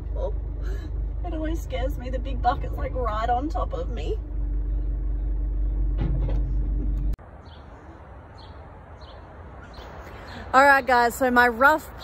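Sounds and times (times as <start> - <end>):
heavy machinery engine rumbling: 0.0 - 7.2
steady hum: 0.0 - 7.2.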